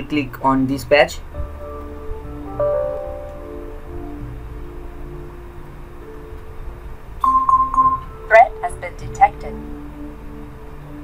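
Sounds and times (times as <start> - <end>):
soft background music: 0.0 - 11.0
antivirus alert beeps: 7.2 - 8.2.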